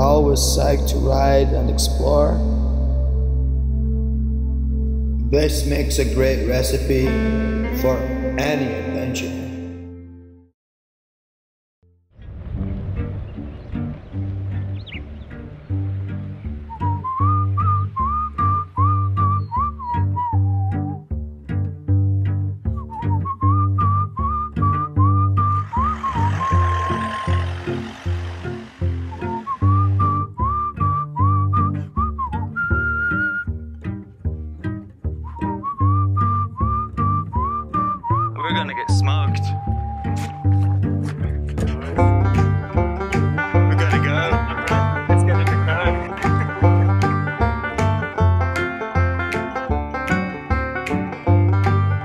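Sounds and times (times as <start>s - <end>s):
whistled tune: 16.4s - 21.2s, 22.7s - 34.0s, 35.1s - 41.1s
hissing wash: 25.6s - 30.0s
low bass beat: 39.5s - 52.0s.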